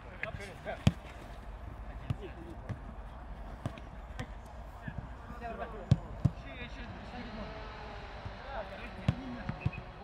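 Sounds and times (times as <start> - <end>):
football kicks: 0.6 - 1.3, 2.0 - 5.0.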